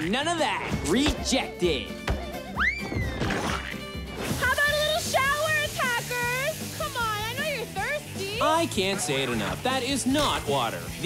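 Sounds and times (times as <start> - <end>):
background music: 0.0 - 11.0
foam spraying: 4.2 - 11.0.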